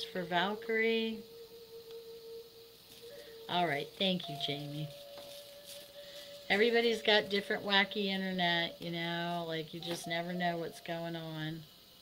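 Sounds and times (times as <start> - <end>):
singing bowl ringing: 0.0 - 11.6.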